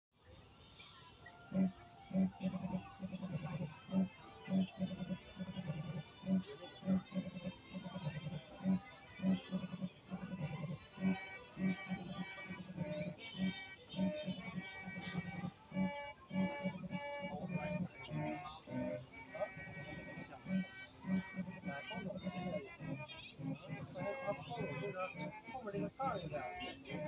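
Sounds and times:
toy music with steady beat: 0.7 - 27.0.

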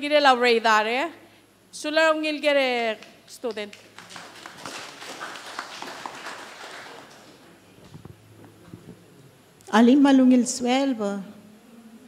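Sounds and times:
light scattered applause: 3.7 - 7.5.

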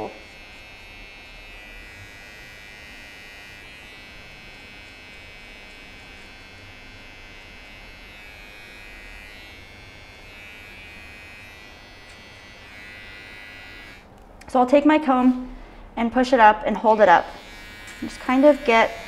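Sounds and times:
hair trimmer buzzing: 0.0 - 14.4, 16.9 - 19.0.

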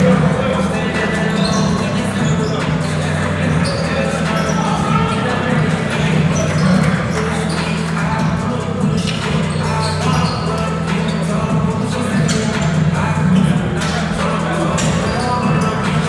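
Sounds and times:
music over sound system: 0.0 - 16.0
voices echoing in hall: 0.0 - 16.0.

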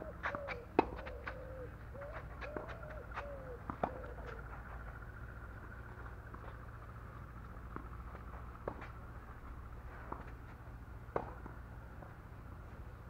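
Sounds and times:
dove cooing: 0.0 - 5.4.

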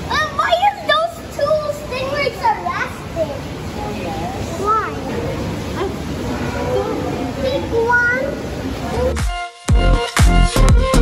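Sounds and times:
child calling and babbling: 0.0 - 3.8, 4.4 - 9.2
steady background noise: 0.0 - 9.6.

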